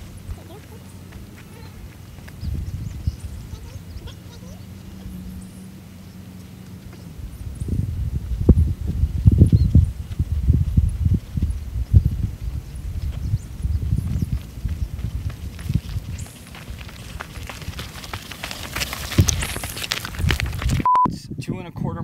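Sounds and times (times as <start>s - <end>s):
wind buffeting a microphone: 0.0s - 5.6s, 6.9s - 22.0s.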